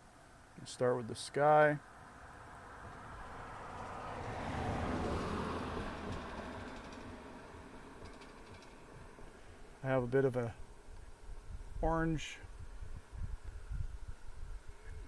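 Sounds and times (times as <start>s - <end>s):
vehicle passing: 2.0s - 9.8s.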